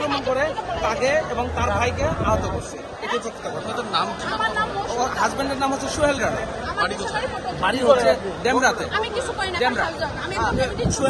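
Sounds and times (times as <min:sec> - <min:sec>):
crowd talking over each other: 0:00.0 - 0:11.0.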